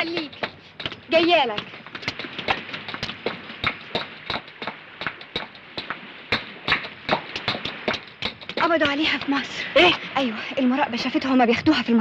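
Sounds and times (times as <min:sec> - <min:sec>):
footsteps hurrying up stairs: 0:00.0 - 0:09.1.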